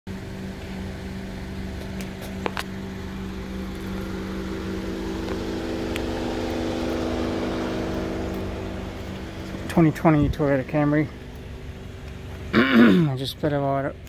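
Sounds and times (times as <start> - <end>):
car engine idling: 0.1 - 14.0.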